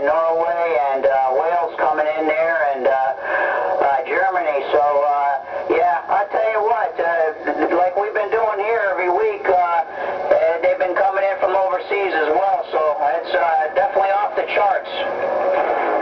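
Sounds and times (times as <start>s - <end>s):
person talking over radio speaker: 0.0s - 15.4s.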